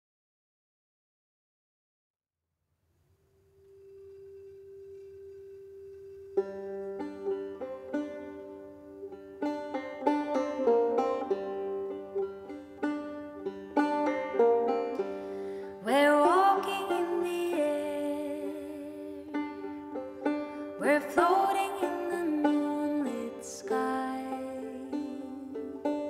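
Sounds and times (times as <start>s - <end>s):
soft held tone: 3.5s - 7.7s
banjo plucking: 5.2s - 26.0s.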